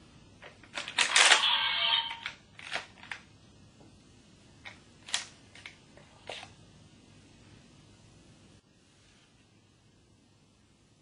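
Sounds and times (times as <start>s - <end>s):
plastic toy clicks and clatter: 0.6s - 3.2s.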